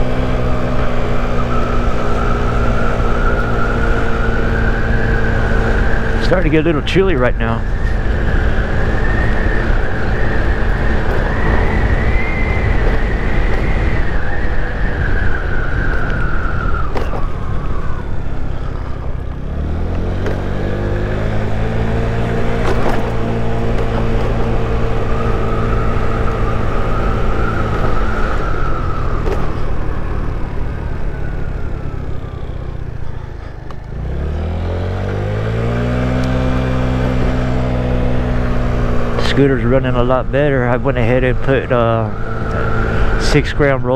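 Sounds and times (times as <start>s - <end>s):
scooter engine whining and revving: 0.0s - 43.9s
wind noise on microphone: 7.4s - 19.4s.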